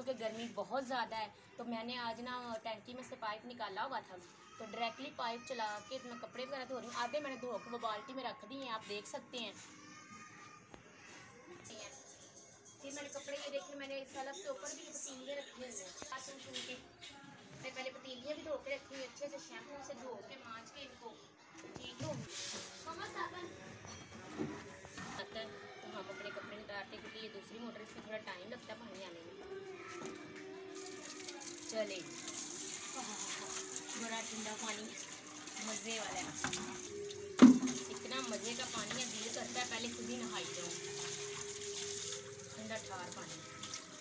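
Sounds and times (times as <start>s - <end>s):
hose water splashing on concrete: 30.7s - 44.0s.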